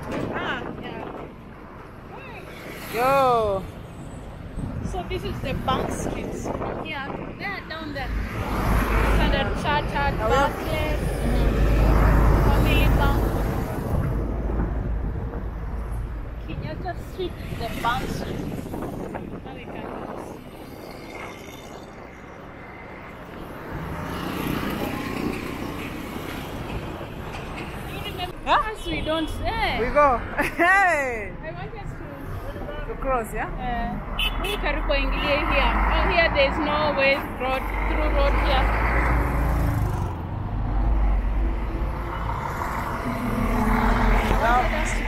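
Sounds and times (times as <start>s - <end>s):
cars and motorbikes passing: 0.0s - 45.0s
vehicle engines rumbling: 0.0s - 45.0s.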